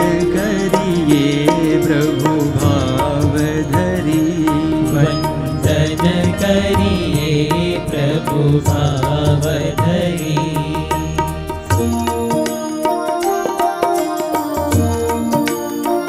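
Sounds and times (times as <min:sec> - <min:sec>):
men singing devotional song: 0:00.0 - 0:12.2
harmonium: 0:00.0 - 0:16.0
sitar: 0:00.0 - 0:16.0
tabla: 0:00.0 - 0:16.0.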